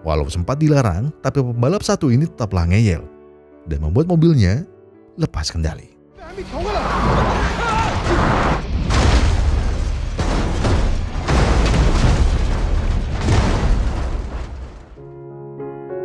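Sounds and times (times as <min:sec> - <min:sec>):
car crashing and rolling over: 0:06.4 - 0:15.0.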